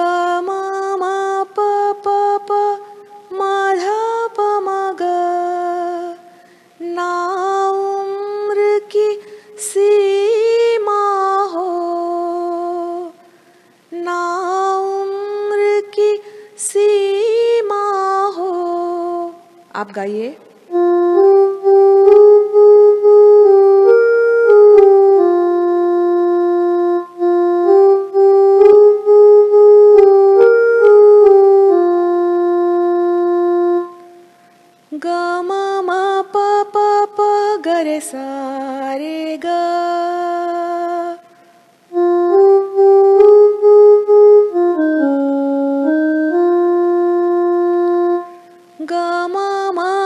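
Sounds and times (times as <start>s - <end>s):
woman singing unaccompanied: 0.0s - 13.3s, 13.9s - 34.2s, 34.9s - 50.0s
electronic keyboard sustained notes: 20.7s - 37.5s, 41.9s - 50.0s.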